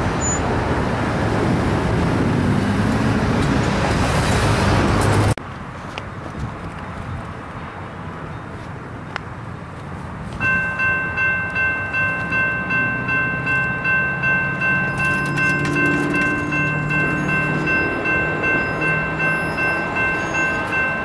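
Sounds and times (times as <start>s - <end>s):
railroad crossing bell ringing: 10.4s - 21.0s.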